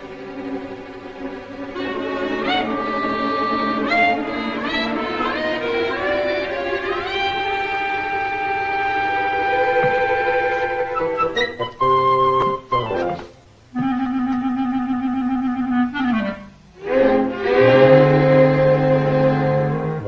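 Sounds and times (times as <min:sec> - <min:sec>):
orchestral music with woodwinds: 0:00.0 - 0:20.0.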